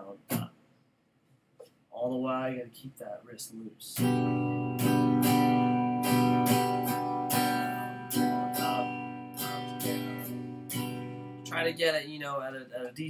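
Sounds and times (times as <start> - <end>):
electric guitar strumming: 4.0 - 11.6.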